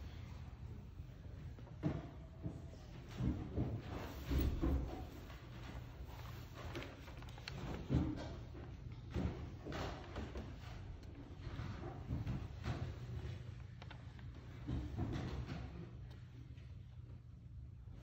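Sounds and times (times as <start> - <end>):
steady low hum: 0.0 - 18.0
wooden knocks and clunks: 1.6 - 16.3.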